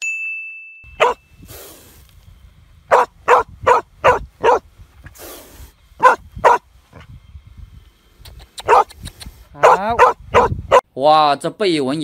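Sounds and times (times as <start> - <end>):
dog barking: 1.0 - 1.2, 2.9 - 4.6, 6.0 - 6.6, 8.6 - 8.9, 9.6 - 10.8.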